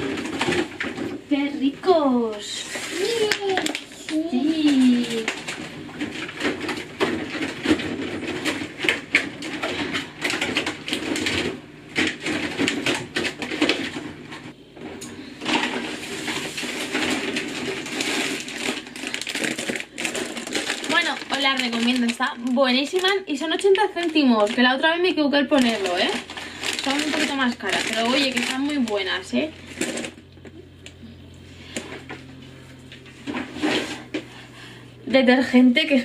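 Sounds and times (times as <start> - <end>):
items knocking in refrigerator: 0.0 - 30.3.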